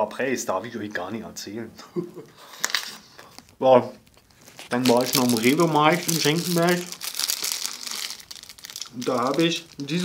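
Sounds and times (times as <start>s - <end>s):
plastic bag crinkling: 2.6s - 10.0s.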